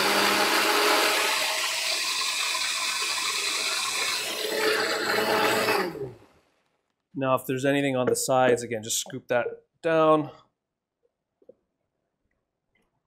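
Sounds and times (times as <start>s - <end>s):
blender whirring and sloshing: 0.0s - 6.3s.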